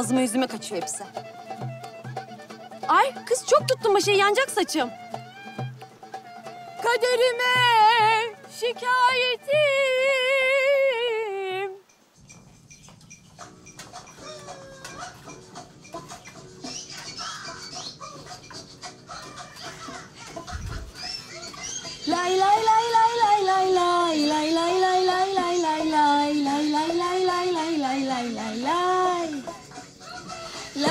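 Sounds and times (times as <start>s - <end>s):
band playing: 0.0s - 10.1s
woman singing with vibrato: 6.8s - 11.9s, 22.1s - 29.6s, 30.7s - 30.9s.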